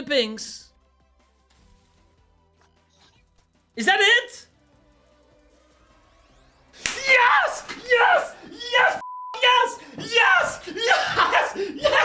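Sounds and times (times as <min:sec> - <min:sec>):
faint game music: 0:00.0 - 0:09.6.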